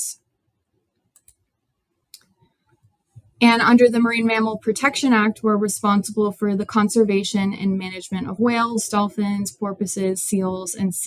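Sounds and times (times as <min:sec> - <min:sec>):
faint computer clicks: 0:01.0 - 0:01.4.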